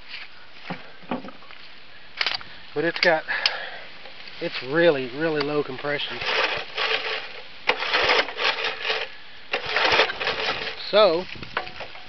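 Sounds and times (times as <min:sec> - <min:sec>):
recoil starter rattling whir: 0:05.4 - 0:12.0.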